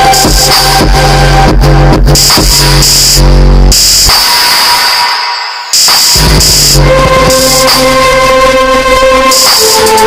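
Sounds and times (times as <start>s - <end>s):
electronic music with synthesizer: 0.0s - 10.0s.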